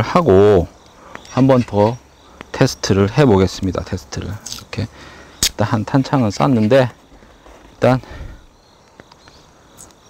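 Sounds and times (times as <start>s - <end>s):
insects buzzing: 0.0s - 10.0s.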